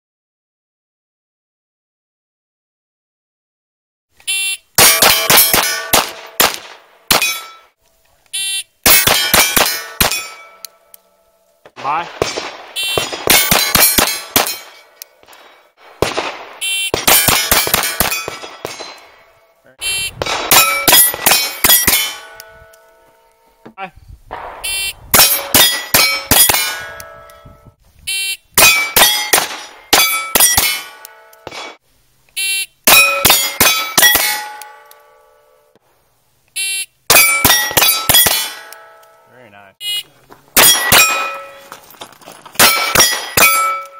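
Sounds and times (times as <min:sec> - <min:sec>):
steel plate target ringing: 0:04.8 - 0:06.5, 0:07.1 - 0:07.8, 0:08.9 - 0:11.3, 0:12.3 - 0:15.8, 0:17.0 - 0:23.4, 0:24.4 - 0:27.8, 0:28.6 - 0:31.8, 0:32.9 - 0:35.7, 0:37.1 - 0:39.4, 0:40.6 - 0:41.8, 0:42.6 - 0:43.9
pistol shots: 0:04.8 - 0:07.6, 0:08.8 - 0:10.6, 0:11.8 - 0:22.8, 0:24.3 - 0:27.3, 0:28.6 - 0:31.8, 0:37.1 - 0:38.8, 0:40.6 - 0:41.8, 0:42.6 - 0:43.9.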